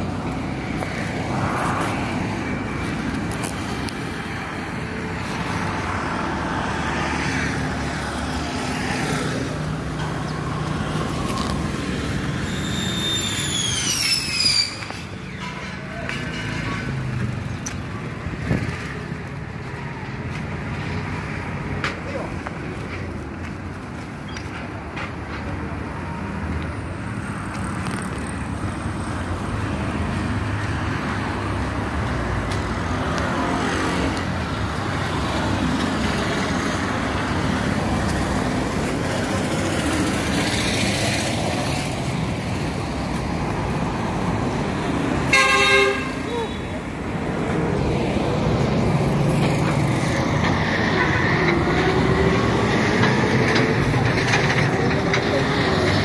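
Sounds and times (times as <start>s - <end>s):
road traffic passing: 0.0s - 56.0s
vehicle horn toot: 45.3s - 46.6s.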